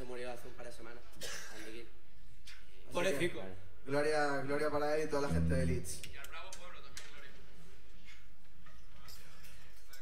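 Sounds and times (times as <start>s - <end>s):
man speaking: 5.0s - 6.1s.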